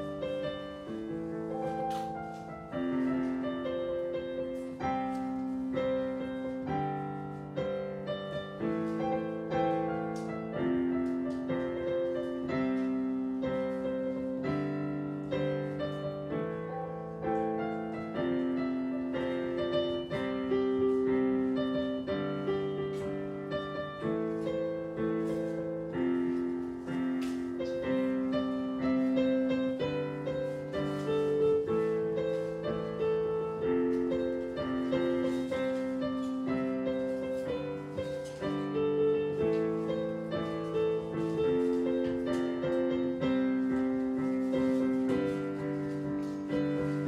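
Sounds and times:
digital piano chords: 0.0s - 47.0s.

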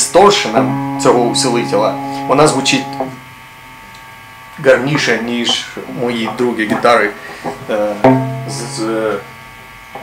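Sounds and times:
distorted electric guitar chords: 0.0s - 10.0s.

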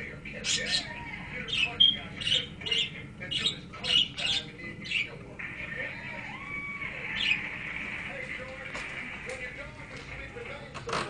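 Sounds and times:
budgerigars chattering: 0.3s - 5.9s, 7.0s - 7.9s.

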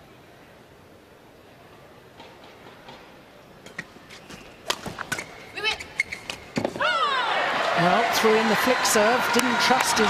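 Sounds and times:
indoor arena hum: 0.0s - 10.0s.

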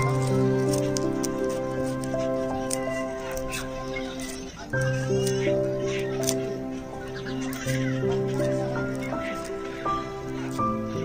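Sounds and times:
background music with held chords: 0.0s - 11.0s.

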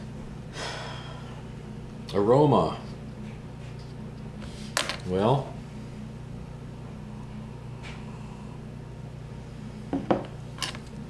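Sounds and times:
low room hum: 0.0s - 11.0s
glass knocking on table: 9.9s - 10.3s.

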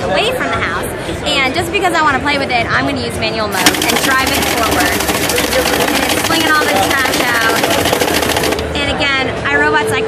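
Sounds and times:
gutter robot motor rattling: 3.5s - 8.7s.

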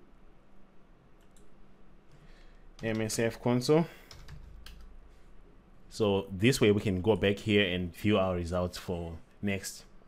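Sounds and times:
computer mouse clicks: 1.2s - 1.6s, 4.1s - 4.9s.

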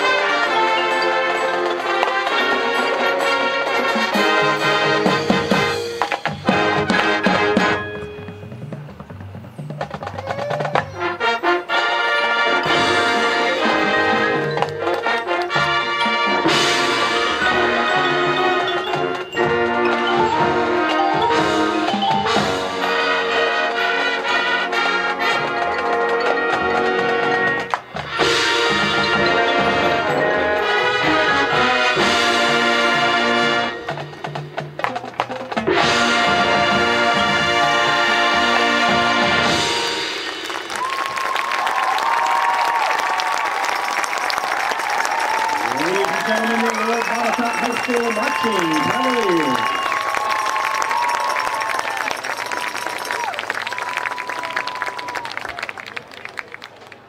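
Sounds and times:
brass chords: 0.0s - 8.7s, 11.0s - 40.8s
marching band playing: 0.0s - 57.0s.

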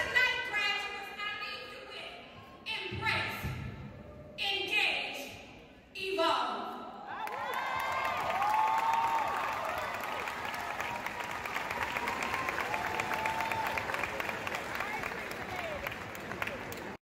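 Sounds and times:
audience applauding: 7.2s - 17.0s.

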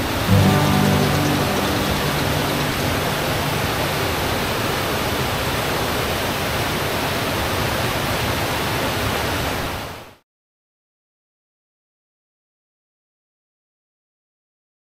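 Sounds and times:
waterfall rushing over rocks: 0.0s - 10.2s.

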